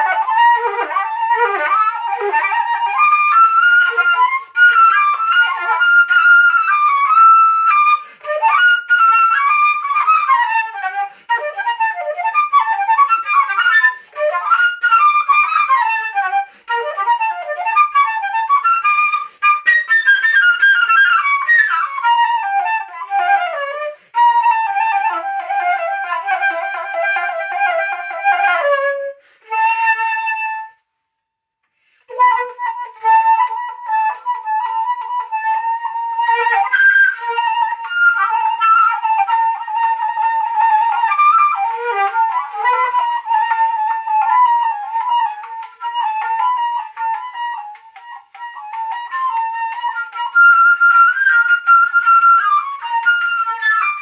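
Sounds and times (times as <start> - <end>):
solo flute playing: 0.0 - 31.0, 31.8 - 54.0.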